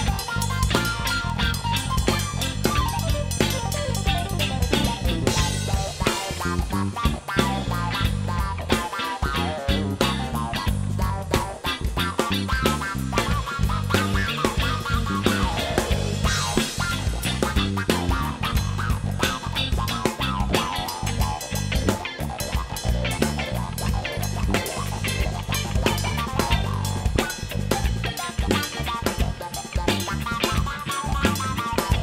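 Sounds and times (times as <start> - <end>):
busy drumming: 0.0 - 32.0
jazz fusion band playing: 0.0 - 32.0
moving bass line: 0.0 - 32.0.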